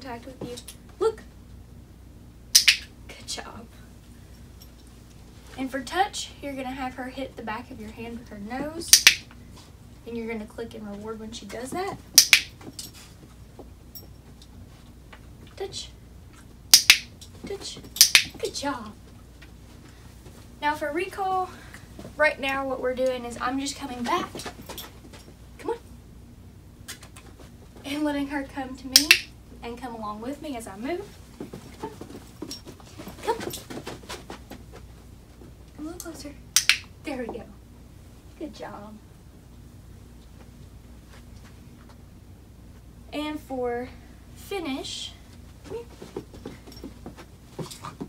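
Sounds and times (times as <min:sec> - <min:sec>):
dog training clicker clicks: 0:12.2 - 0:12.5, 0:18.0 - 0:18.4, 0:29.0 - 0:29.3, 0:36.6 - 0:36.9.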